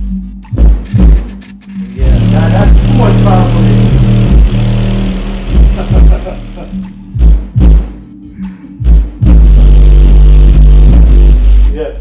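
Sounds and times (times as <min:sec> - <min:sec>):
bass-heavy music through subwoofer: 0:00.0 - 0:12.0
heavy kick beat: 0:00.0 - 0:12.0.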